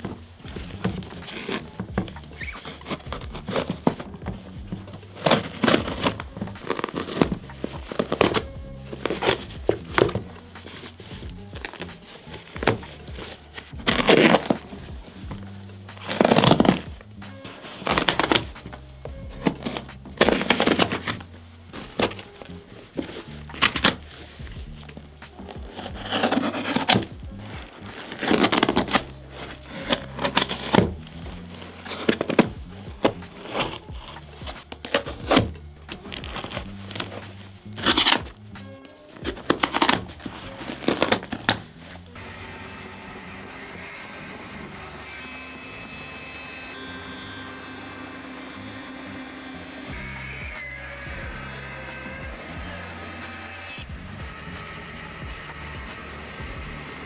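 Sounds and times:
music with steady beat: 0.0s - 42.2s, 49.9s - 57.0s
blade cutting and ripping boots: 0.0s - 57.0s
band saw cutting: 42.2s - 57.0s.

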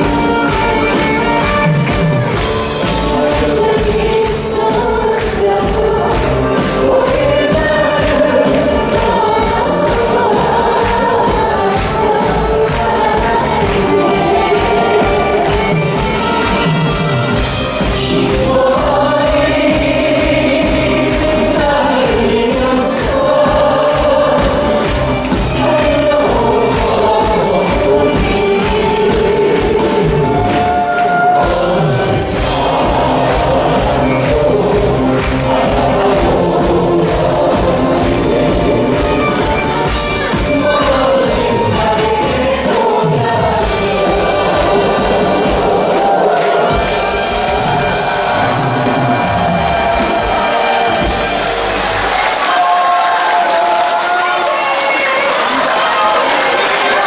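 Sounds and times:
live band with drums: 0.0s - 57.0s
group singing into microphones: 2.2s - 57.0s
audience cheering: 30.0s - 33.8s, 44.6s - 57.0s.

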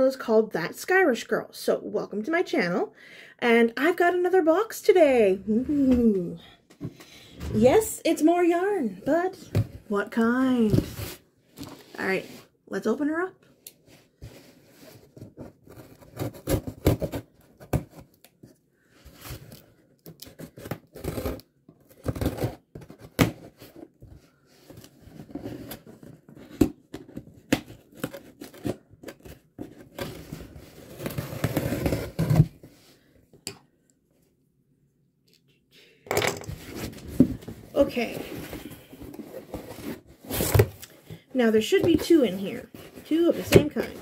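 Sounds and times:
cardboard scraping: 24.6s - 33.1s, 36.5s - 44.0s.

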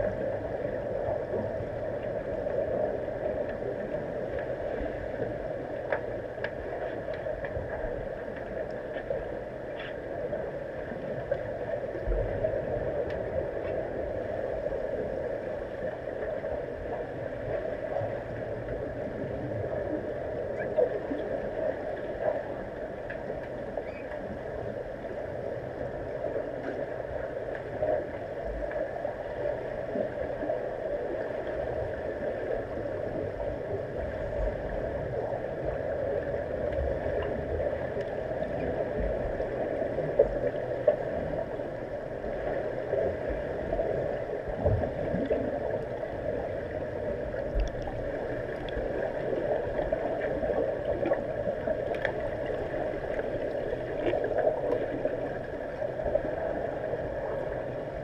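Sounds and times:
muffled underwater hum and hiss: 0.0s - 58.0s
faint clicks: 4.3s - 10.1s, 22.0s - 24.4s, 47.4s - 48.9s, 49.7s - 55.1s.

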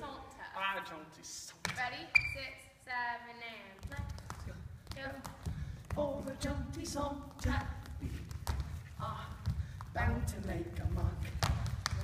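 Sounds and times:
shoes stamping on stage floor: 3.7s - 12.0s.

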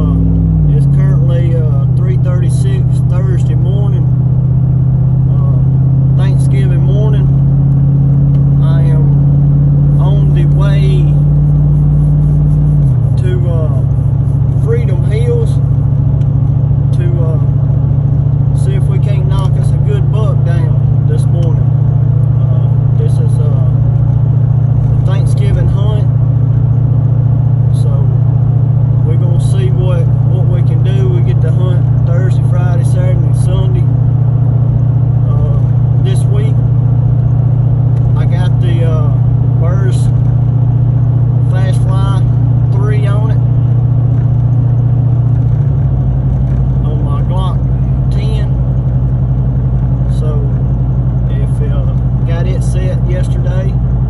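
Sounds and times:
car engine and road drone: 0.0s - 54.0s.

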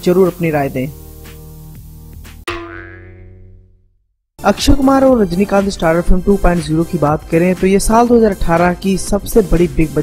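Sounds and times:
ringing struck transition tone: 2.5s - 3.7s
background music: 4.4s - 10.0s.

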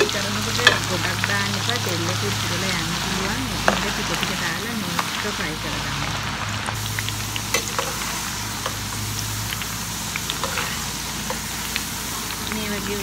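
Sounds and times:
vegetables sizzling in hot oil: 0.0s - 13.0s
slotted spoon stirring: 10.3s - 11.5s.

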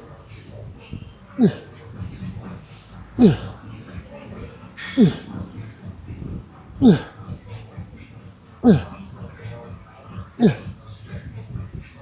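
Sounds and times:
man grunting: 1.4s - 1.8s, 3.2s - 3.6s, 5.0s - 5.4s, 6.8s - 7.2s, 8.6s - 9.0s, 10.4s - 10.8s.

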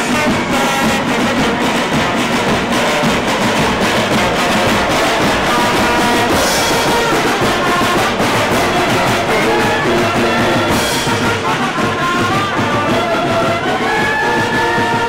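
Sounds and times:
brass and reed instruments: 0.0s - 15.0s
snare and bass drums marching: 0.0s - 15.0s.

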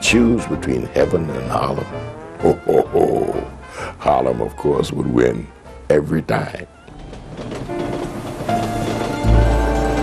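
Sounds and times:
train rumbling on tracks: 6.5s - 10.0s.

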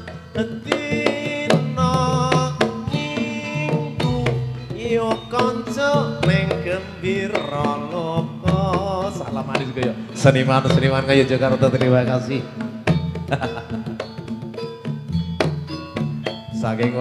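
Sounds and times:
hand drums beating: 0.0s - 17.0s
wavering gamelan melody: 0.0s - 17.0s.

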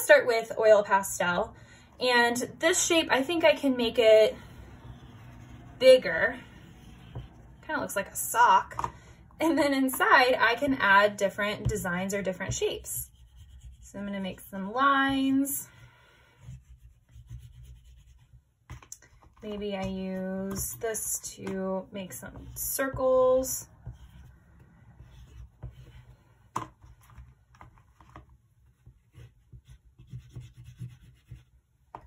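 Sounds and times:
oil pastel scratching on paper: 2.4s - 8.0s, 12.4s - 14.4s, 15.1s - 21.0s, 22.0s - 26.4s, 27.8s - 31.7s
oil pastel scrubbing on paper: 2.8s - 7.9s, 13.0s - 14.1s, 16.2s - 18.4s.

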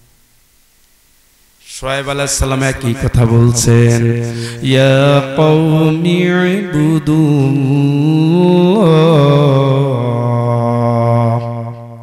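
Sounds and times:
man chanting a long sung note: 1.6s - 12.0s.

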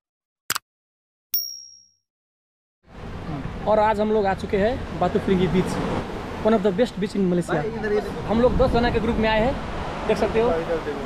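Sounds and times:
high-pitched bell ding: 1.4s - 2.0s.

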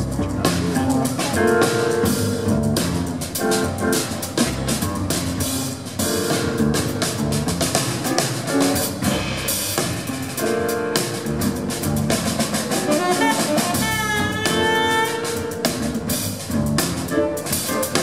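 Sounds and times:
double bass: 0.0s - 18.0s
drum kit with cymbals: 0.0s - 18.0s
piano chords: 0.0s - 18.0s
tenor saxophone: 12.7s - 15.8s.

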